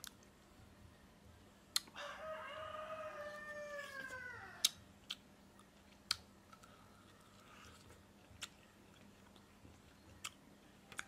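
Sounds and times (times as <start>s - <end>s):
rooster crowing: 2.0s - 4.6s.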